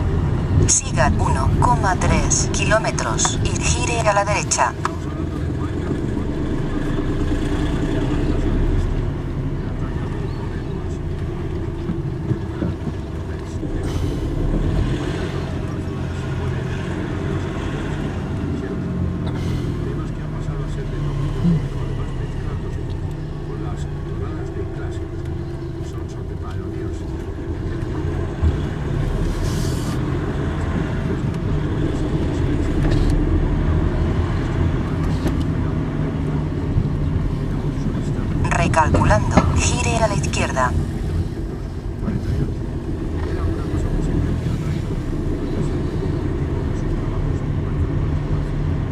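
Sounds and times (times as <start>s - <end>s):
car engine and road hum: 0.0s - 48.9s.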